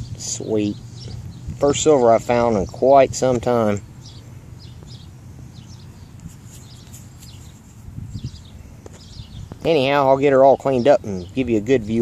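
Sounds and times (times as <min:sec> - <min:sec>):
steady low rumble: 0:00.0 - 0:09.8
small birds chirping: 0:00.0 - 0:12.0.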